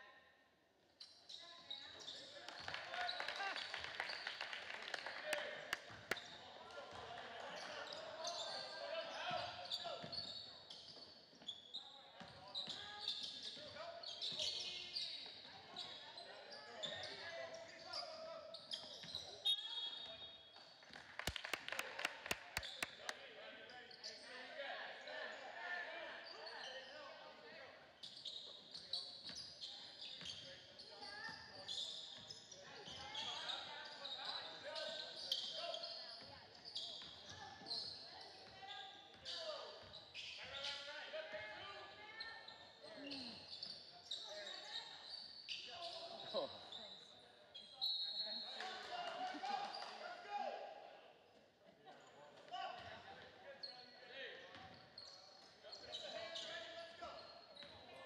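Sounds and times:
sneakers squeaking: 1.0s - 3.3s, 7.8s - 20.4s, 21.2s - 23.1s, 28.0s - 40.9s, 52.7s - 58.0s
crowd chatter: 21.2s - 23.5s.

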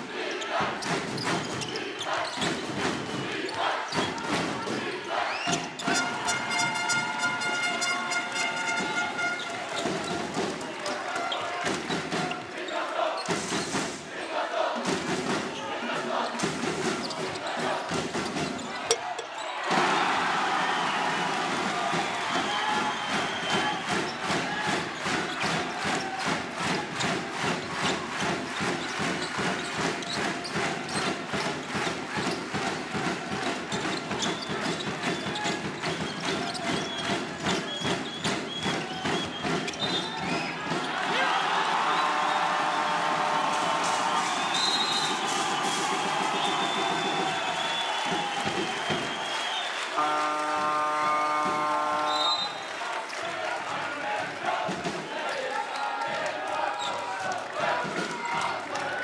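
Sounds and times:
arena crowd cheering: 0.0s - 59.0s.

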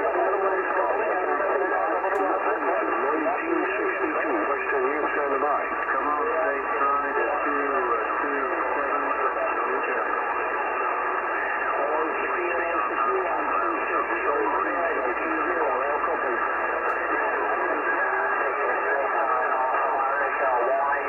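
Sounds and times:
many voices over radio: 0.0s - 21.0s.

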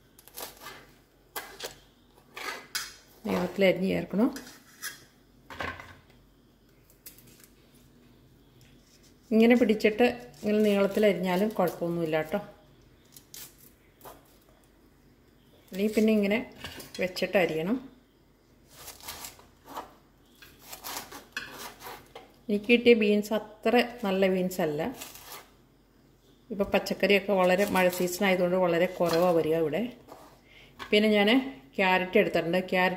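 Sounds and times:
green beans rustling: 26.9s - 30.4s.

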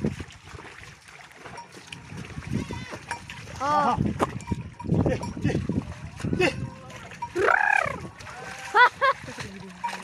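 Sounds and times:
hooves splashing through mud: 0.0s - 10.0s
man shouting calls: 7.4s - 8.0s.

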